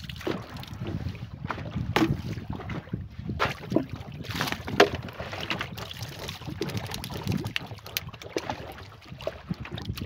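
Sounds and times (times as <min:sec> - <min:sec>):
water lapping around canoe: 0:00.0 - 0:10.0
wind rumbling on microphone: 0:00.0 - 0:10.0.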